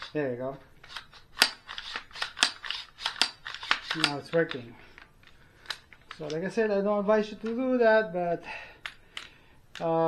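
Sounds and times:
pistol bolt racking clicks: 0:00.8 - 0:06.5, 0:08.8 - 0:10.0.

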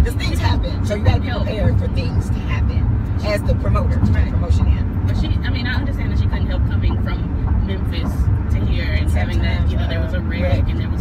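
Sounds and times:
car interior rumble: 0:00.0 - 0:11.0
woman talking: 0:00.0 - 0:11.0.

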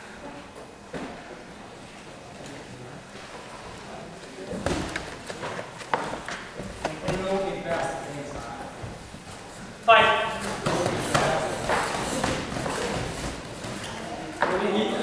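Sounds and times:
indistinct voices in a hall: 0:00.0 - 0:15.0.

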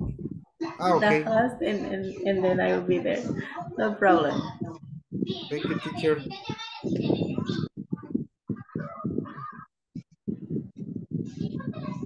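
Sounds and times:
person talking: 0:00.8 - 0:02.9.

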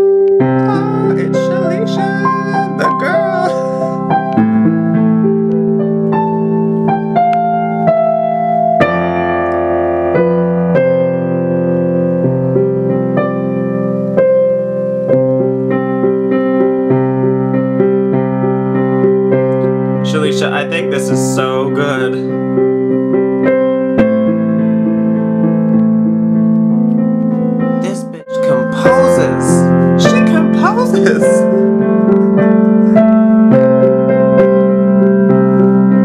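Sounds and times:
digital piano chords: 0:00.0 - 0:36.0.

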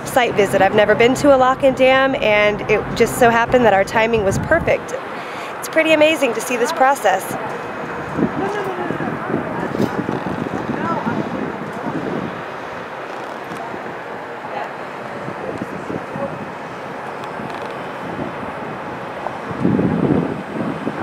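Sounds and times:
steady outdoor rumble: 0:00.0 - 0:21.0
wind buffeting microphone: 0:00.0 - 0:21.0.

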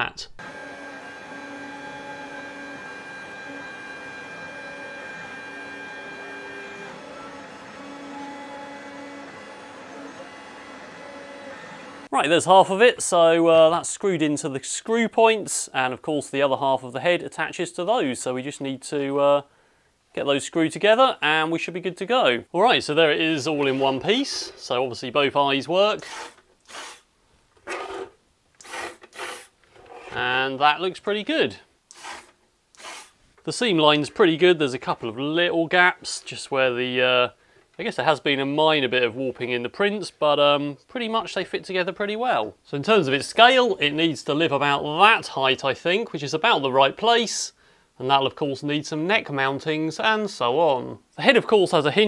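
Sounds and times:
servos whirring: 0:00.4 - 0:12.1, 0:31.9 - 0:33.2
three-d printer stepper motors whining: 0:00.4 - 0:12.1.

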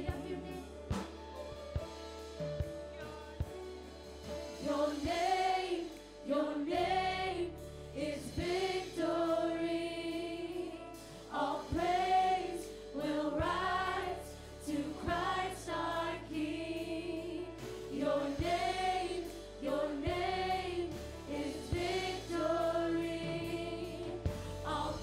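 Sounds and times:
low band accompaniment: 0:00.0 - 0:25.0
choir singing long notes: 0:04.6 - 0:10.7, 0:11.3 - 0:25.0.

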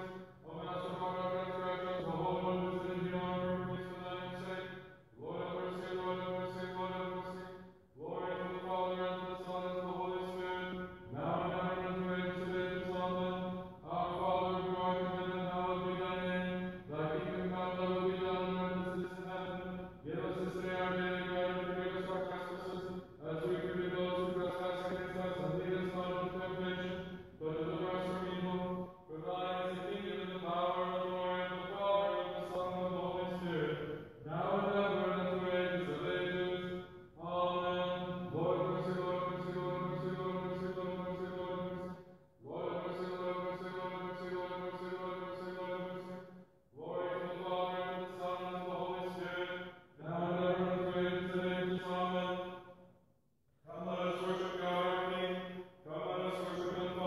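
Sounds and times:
person chanting: 0:00.0 - 0:52.8, 0:53.6 - 0:57.0.

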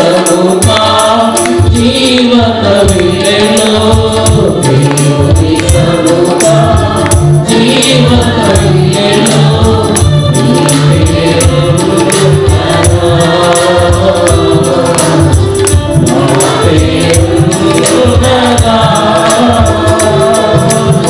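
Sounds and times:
mixed choir singing: 0:00.0 - 0:21.0
tambourine: 0:00.0 - 0:21.0.

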